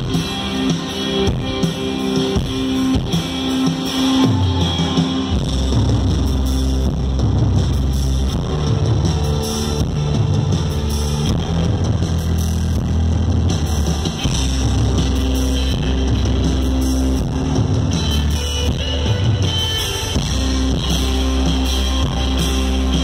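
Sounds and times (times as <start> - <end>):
drums: 0.0 - 23.0
electric guitar: 0.0 - 23.0.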